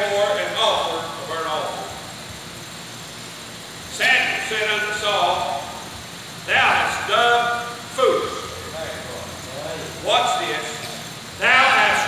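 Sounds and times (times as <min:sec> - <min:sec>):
man preaching loudly: 0:06.5 - 0:08.5, 0:11.4 - 0:12.0.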